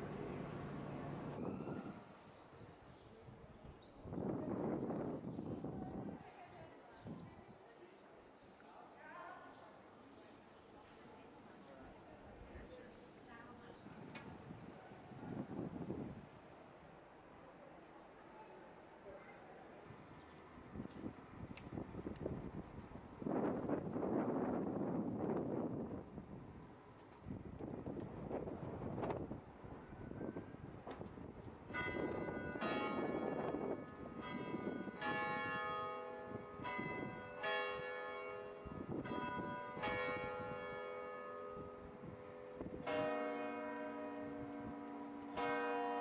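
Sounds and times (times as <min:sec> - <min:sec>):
church bells ringing: 0:31.7 - 0:46.0.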